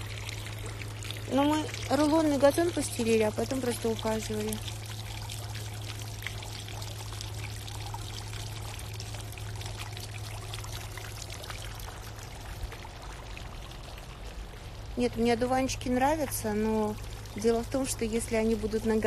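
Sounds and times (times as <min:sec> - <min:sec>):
low steady hum: 0:00.0 - 0:19.0
water splashing in fountain: 0:00.0 - 0:19.0.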